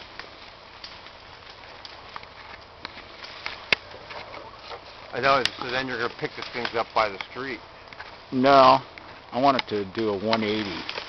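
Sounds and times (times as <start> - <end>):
branches cracking and snapping: 0.0 - 11.0.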